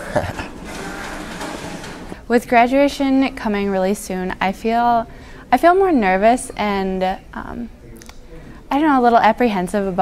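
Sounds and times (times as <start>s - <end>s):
man laughing: 0.0s - 0.5s.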